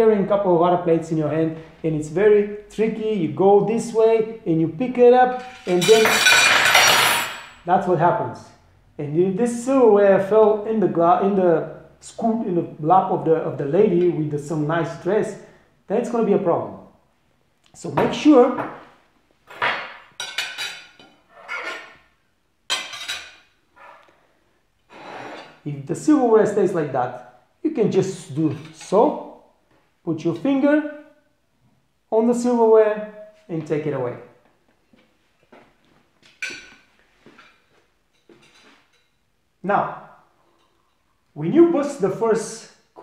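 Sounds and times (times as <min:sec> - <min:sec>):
cutlery clinking on a plate: 0:05.3 - 0:07.6, 0:19.5 - 0:22.0, 0:22.7 - 0:23.5, 0:36.2 - 0:39.2.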